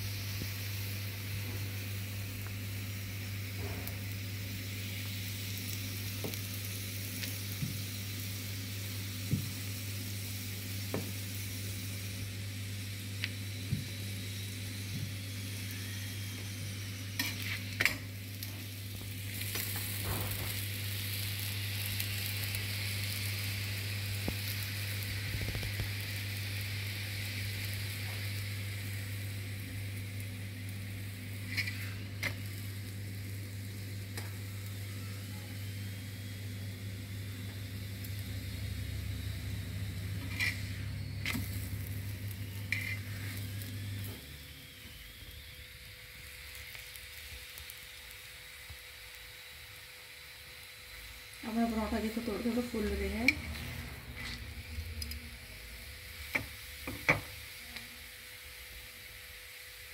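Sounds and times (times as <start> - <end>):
steady low hum: 0.0 - 45.7, 50.9 - 58.0
flatbread sizzling on a griddle: 0.0 - 59.9.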